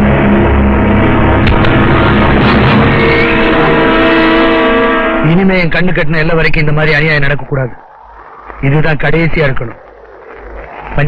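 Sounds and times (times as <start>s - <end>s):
dramatic film score chord: 0.0s - 7.0s.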